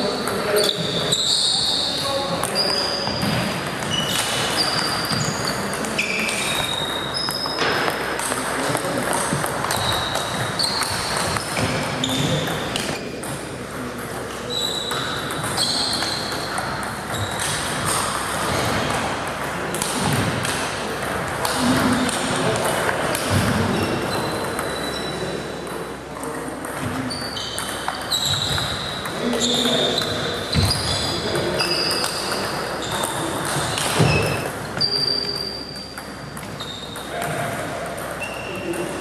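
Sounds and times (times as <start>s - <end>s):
people talking: 0.0s - 27.2s, 28.0s - 39.0s.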